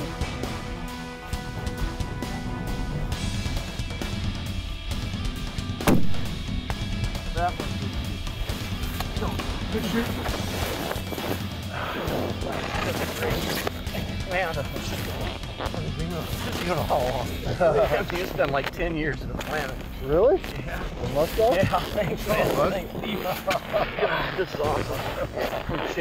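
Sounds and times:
background music: 0:00.0 - 0:26.0
rifle shot: 0:05.8 - 0:06.4.

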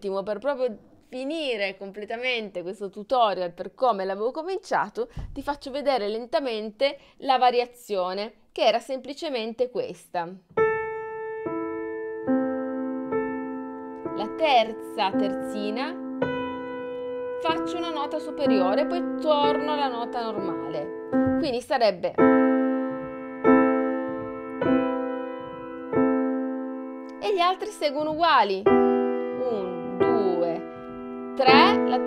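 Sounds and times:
slow piano notes: 0:10.5 - 0:32.0.

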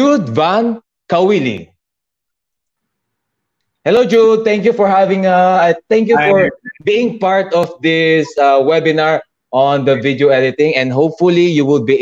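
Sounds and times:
man saying hello: 0:06.1 - 0:06.6.

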